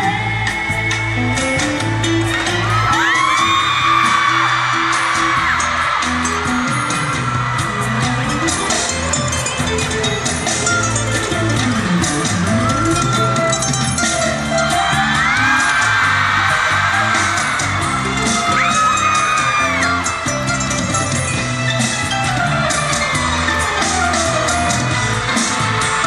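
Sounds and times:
pop concert music with dance beat: 0.0s - 26.0s
audience whooping and screaming: 1.4s - 26.0s.

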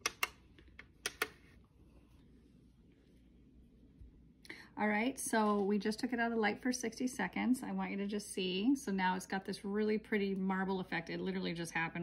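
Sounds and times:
nail lamp clicks: 0.0s - 1.4s.

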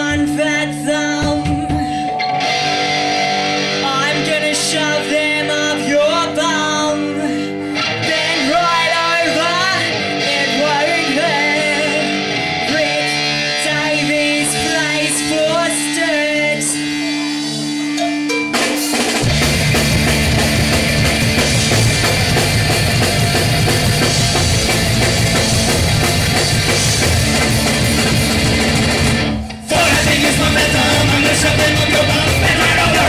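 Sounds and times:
woman singing: 0.0s - 2.2s, 3.8s - 16.8s
drums and full band: 0.0s - 33.0s
electric guitar chords: 0.0s - 33.0s.

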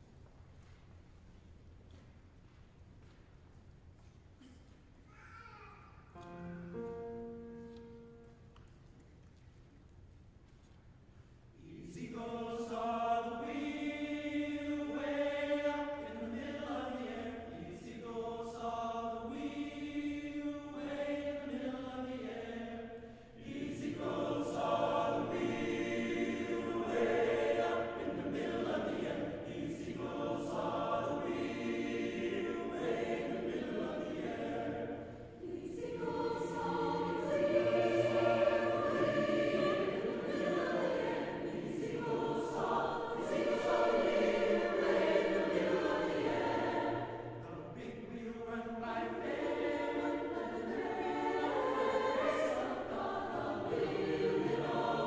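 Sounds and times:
choir singing sustained chords: 6.2s - 8.5s, 11.5s - 55.0s.

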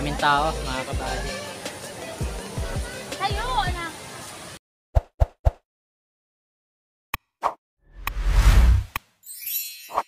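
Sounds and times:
whoosh: 7.9s - 9.0s.

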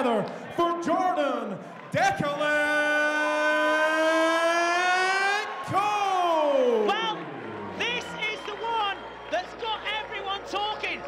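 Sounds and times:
ring announcer calling: 2.0s - 11.0s.

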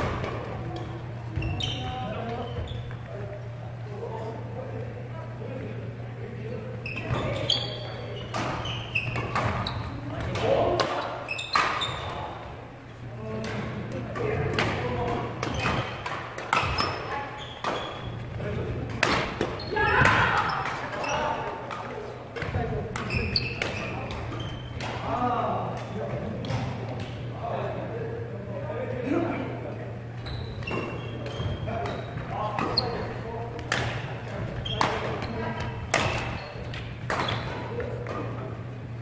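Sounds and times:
voices echoing in hall: 0.0s - 39.0s
shoes squeaking on wooden floor: 0.9s - 3.2s, 6.8s - 10.3s, 10.9s - 12.4s, 15.1s - 18.5s, 22.6s - 24.9s, 30.2s - 33.6s, 34.4s - 38.2s
racket striking shuttlecock: 35.8s - 38.3s.

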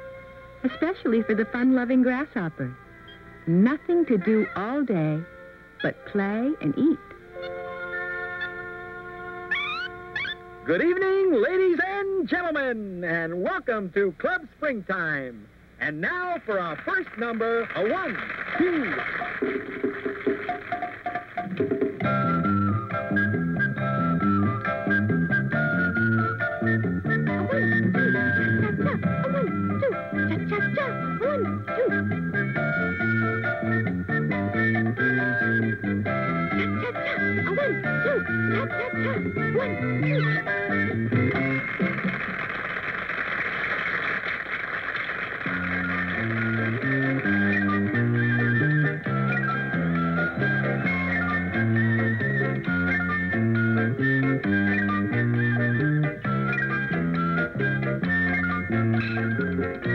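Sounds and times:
upbeat band tune: 16.0s - 59.9s.

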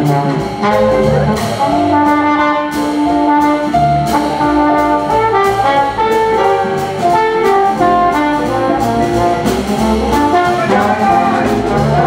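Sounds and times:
jazz band playing: 0.0s - 12.0s
trombone melody: 0.0s - 12.0s.

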